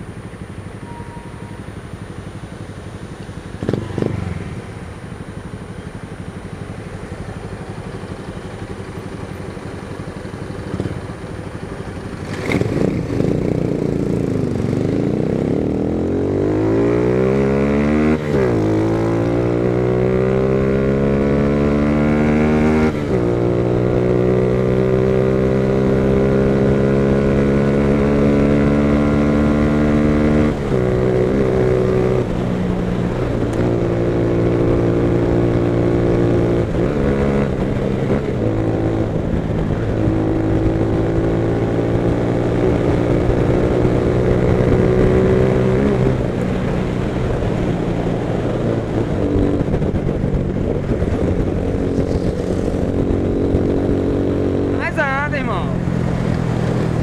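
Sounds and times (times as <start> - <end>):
motorcycle engine accelerating: 0.0 - 57.0.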